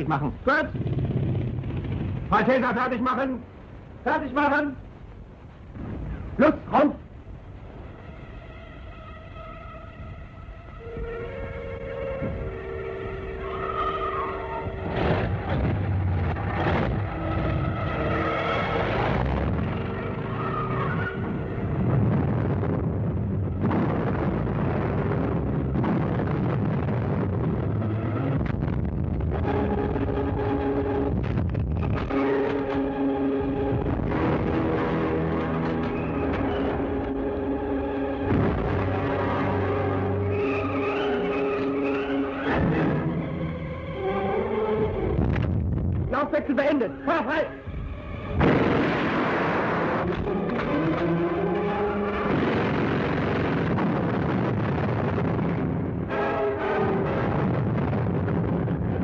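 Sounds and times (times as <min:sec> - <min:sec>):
vehicle engines revving: 0:00.0 - 0:02.9, 0:14.3 - 0:26.0, 0:49.5 - 0:53.8
music playing: 0:07.8 - 0:15.3.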